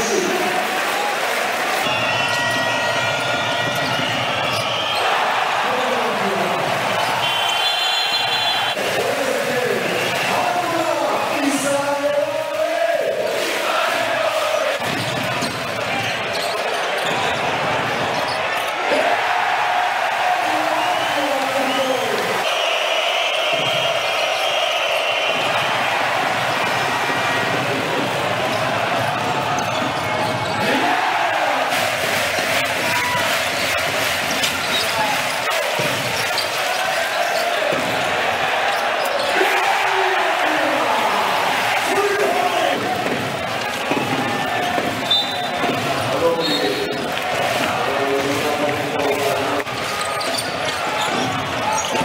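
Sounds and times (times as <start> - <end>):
crowd din: 0.0 - 52.0
voices in a hall: 0.0 - 52.0
basketball bouncing on court: 14.8 - 18.7, 25.3 - 30.7, 42.7 - 46.6.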